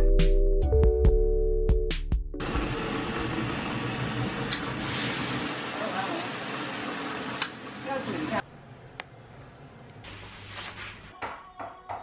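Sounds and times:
background music: 0.0s - 2.8s, 11.1s - 12.0s.

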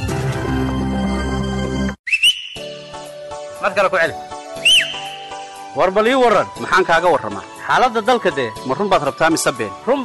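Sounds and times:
music: 0.0s - 10.0s
high rising whistle: 2.0s - 2.9s, 4.6s - 5.5s.

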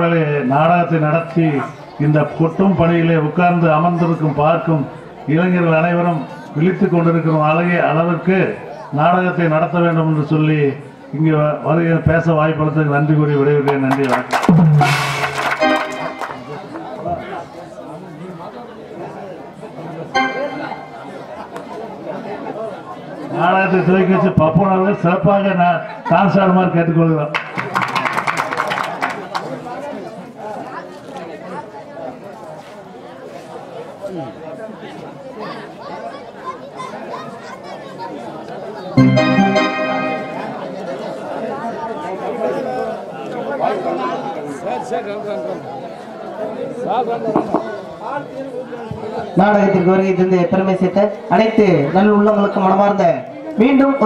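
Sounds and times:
overlapping chatter of people: 0.0s - 54.0s.

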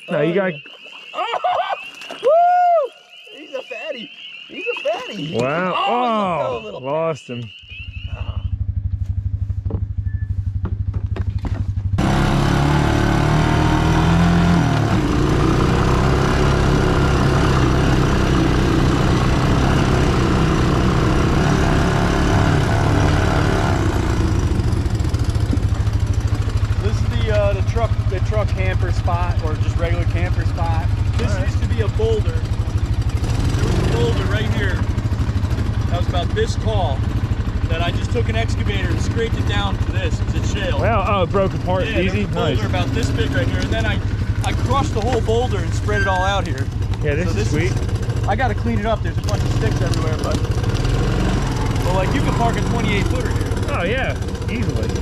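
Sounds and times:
engine idling and driving: 3.5s - 55.0s.

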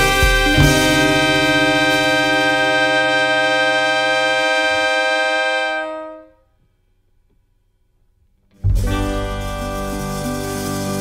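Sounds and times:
sustained music chord: 0.0s - 6.0s.

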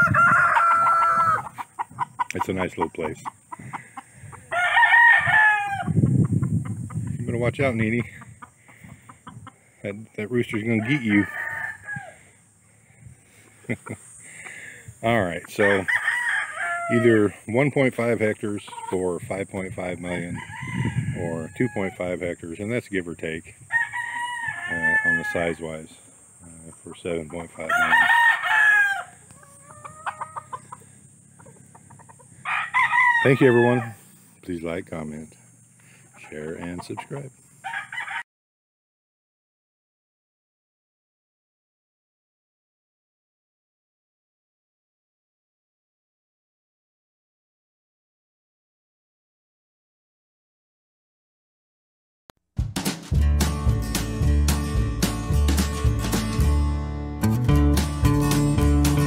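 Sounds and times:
rooster crowing: 0.0s - 1.6s, 3.6s - 6.0s, 10.8s - 12.4s, 15.6s - 17.2s, 20.2s - 22.0s, 23.7s - 25.8s, 27.6s - 30.8s, 32.3s - 34.0s, 37.6s - 38.3s
chickens clucking: 0.0s - 4.6s, 5.7s - 15.9s, 16.7s - 23.6s, 24.5s - 28.0s, 29.1s - 37.6s.

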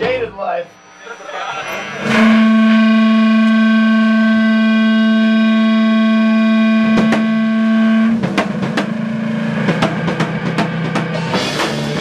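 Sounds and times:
distorted electric guitar note: 0.0s - 12.0s
rock drum kit hits: 6.9s - 12.0s.

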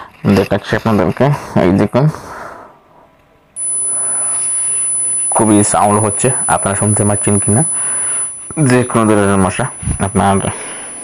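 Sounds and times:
high-pitched tone: 3.6s - 11.0s.

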